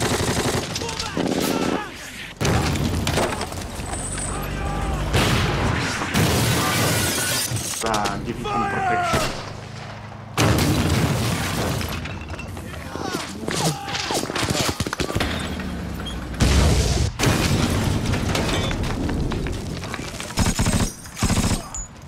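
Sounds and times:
crashes and shattering debris: 0.6 - 8.1, 9.2 - 21.8
men shouting: 4.3 - 5.2, 8.3 - 9.3.

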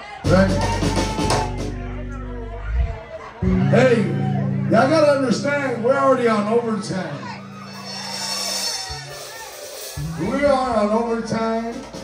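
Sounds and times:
faint voices: 0.0 - 4.8
band playing low notes: 0.2 - 12.0.

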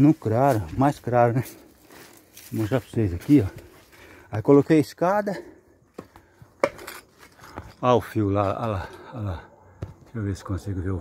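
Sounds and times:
man's voice: 0.0 - 1.6, 2.5 - 3.6.

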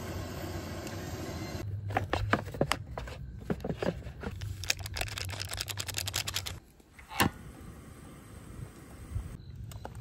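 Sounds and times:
gas burner hissing: 0.0 - 1.6, 7.2 - 9.4
packaging crinkling: 4.2 - 6.6.

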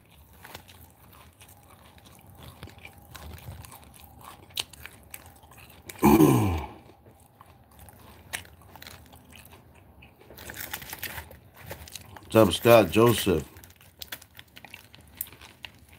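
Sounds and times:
person chewing food: 0.0 - 12.7, 13.3 - 15.9.

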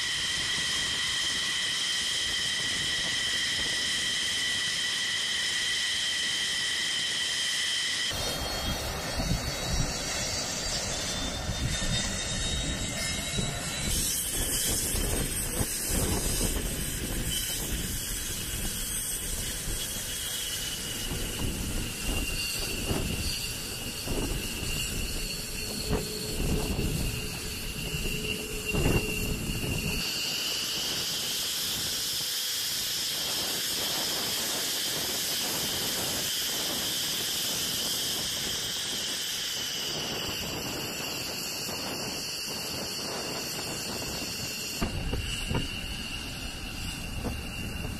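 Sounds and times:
jet engines whining: 0.0 - 47.9.

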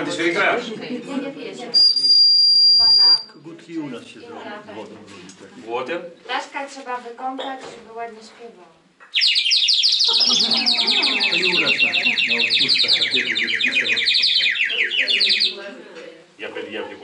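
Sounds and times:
voices talking: 1.1 - 3.4, 10.0 - 17.0
bird whistle trilling: 1.7 - 3.4, 9.1 - 15.6.

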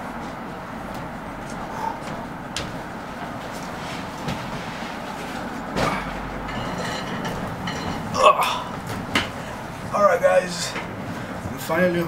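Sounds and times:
steady rumbling noise: 0.0 - 12.0.

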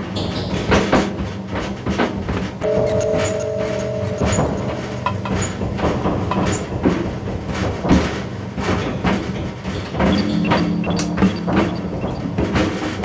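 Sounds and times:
electronic instrumental music: 2.6 - 6.5, 10.2 - 12.9
sustained two-note synth tone: 2.6 - 6.6, 10.2 - 12.7.

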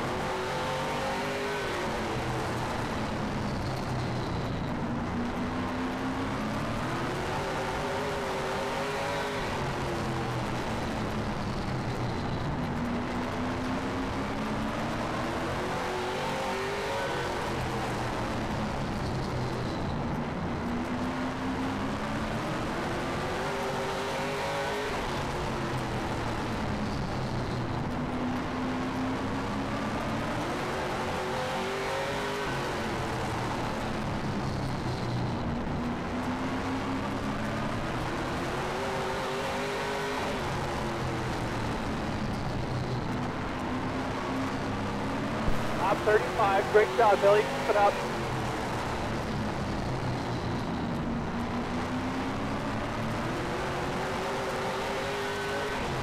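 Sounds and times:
race car engine: 0.0 - 26.8, 27.8 - 56.0.

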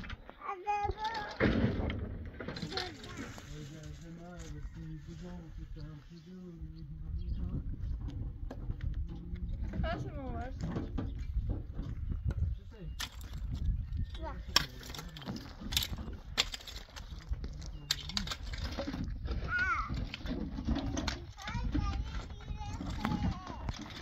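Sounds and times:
young child's voice: 0.4 - 1.6, 2.6 - 3.5, 19.4 - 20.0, 20.9 - 24.0
rake scraping stony soil: 2.6 - 5.4
rake tines knocking stones: 13.0 - 22.1.

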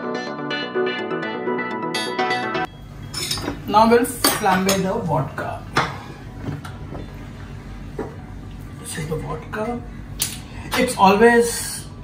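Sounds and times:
gas burner humming: 2.7 - 12.0.

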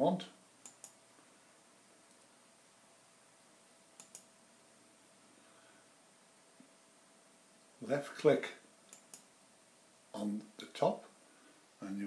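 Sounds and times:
faint room hiss: 0.0 - 12.0
computer mouse button clicks: 0.6 - 1.0, 4.0 - 4.3.

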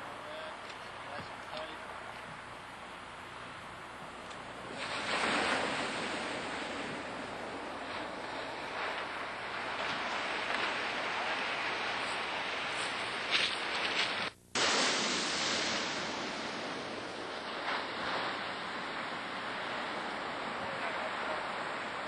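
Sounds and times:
ocean surf washing ashore: 0.0 - 22.0.

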